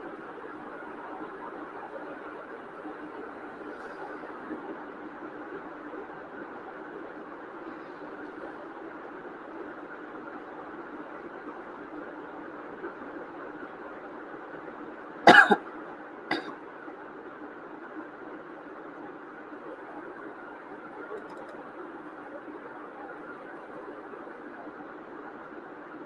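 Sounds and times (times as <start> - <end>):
person coughing: 15.3 - 15.6, 16.3 - 16.5.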